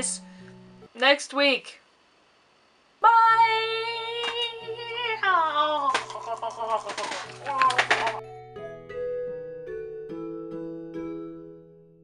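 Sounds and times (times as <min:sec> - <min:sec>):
woman vocalising wordlessly: 0:03.0 - 0:07.9.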